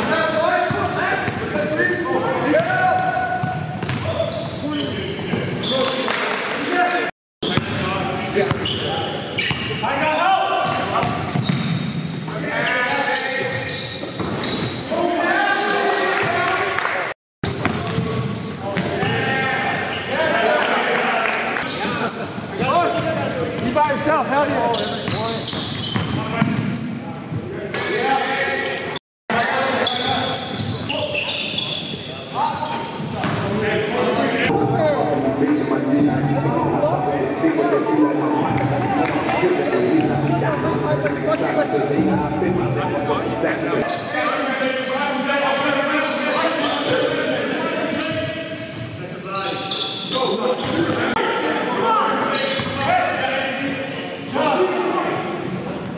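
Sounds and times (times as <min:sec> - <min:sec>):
basketball bouncing on court: 0:00.7 - 0:01.6, 0:03.4 - 0:04.6, 0:07.4 - 0:07.9, 0:10.6 - 0:12.0, 0:17.5 - 0:18.9, 0:25.0 - 0:26.7.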